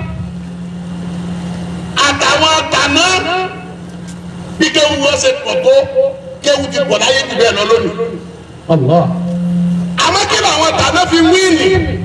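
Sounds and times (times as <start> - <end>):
low engine-like hum: 0.0 - 12.0.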